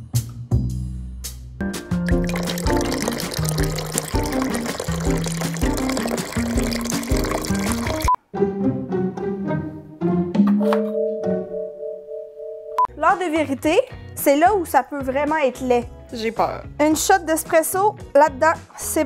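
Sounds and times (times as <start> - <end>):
background music: 0.0 - 19.0
espresso pouring into glass cups: 2.0 - 8.1.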